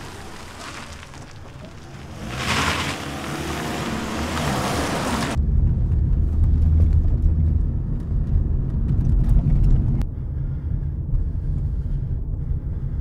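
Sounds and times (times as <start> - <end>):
car cabin road rumble: 0.0 - 13.0.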